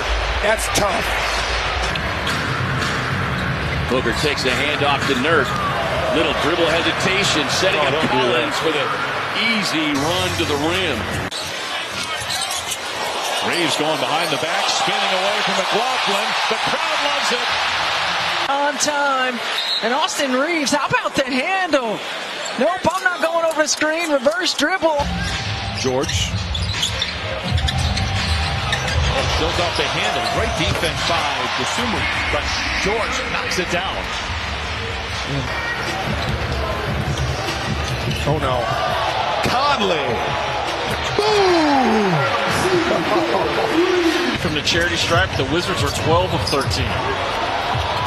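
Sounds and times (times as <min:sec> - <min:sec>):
arena crowd noise: 0:00.0 - 0:48.0.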